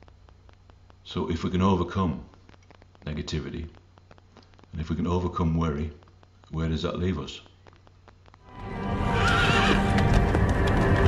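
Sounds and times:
soundtrack music: 8.4s - 11.0s
hoofbeats: 8.6s - 11.0s
horse whinnying: 8.9s - 10.1s.

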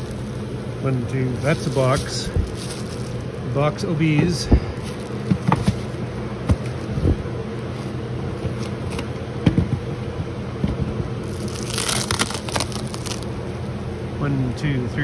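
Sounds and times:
crinkling scraping rustle: 0.0s - 0.5s, 1.2s - 3.4s, 4.8s - 7.0s, 11.2s - 13.3s
steady low hum: 0.0s - 15.0s.

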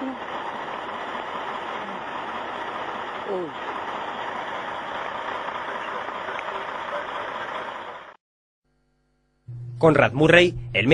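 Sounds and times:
emergency vehicles idling: 0.0s - 8.2s.

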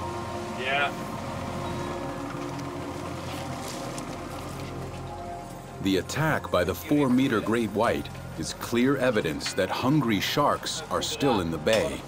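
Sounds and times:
background music: 0.0s - 12.0s
boat engine rumble: 0.0s - 12.0s.

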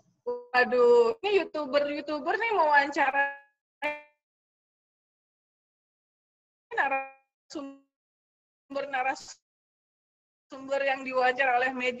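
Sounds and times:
woman's voice over video call: 0.3s - 3.4s, 6.7s - 7.8s, 8.7s - 9.4s, 10.5s - 12.0s.

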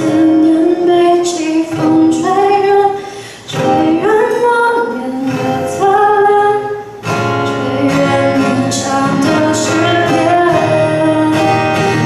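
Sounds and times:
strummed acoustic guitar: 0.0s - 12.0s
woman singing pop ballad: 0.0s - 12.0s.

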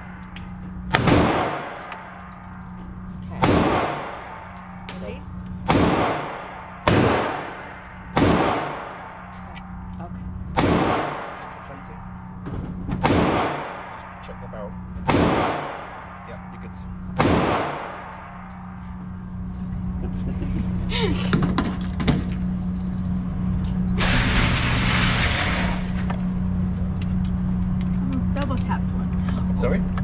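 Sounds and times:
steady low hum: 0.0s - 30.0s
gunshot echo ringing: 0.9s - 2.0s, 3.4s - 4.5s, 5.6s - 9.1s, 10.6s - 11.5s, 13.0s - 14.3s, 15.0s - 16.3s, 17.2s - 18.4s
pistol shots: 0.9s - 2.1s, 3.4s - 4.6s, 5.6s - 9.1s, 10.5s - 11.5s, 13.0s - 14.2s, 15.0s - 16.2s, 17.2s - 18.5s.

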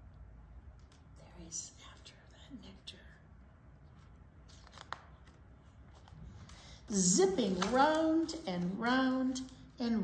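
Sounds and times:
low room hum: 0.0s - 10.0s
faint whispered voice: 1.1s - 3.4s.

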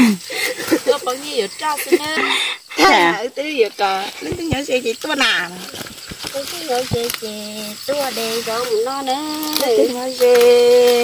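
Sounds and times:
woman talking: 0.6s - 11.0s.

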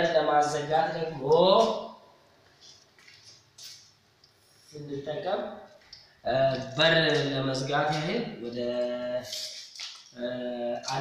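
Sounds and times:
man speaking: 0.0s - 2.0s, 4.7s - 9.5s, 10.2s - 11.0s.

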